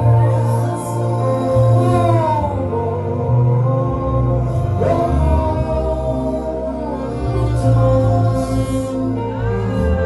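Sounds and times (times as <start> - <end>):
live instrumental accompaniment: 0.0 - 10.0
woman singing gospel: 0.0 - 10.0.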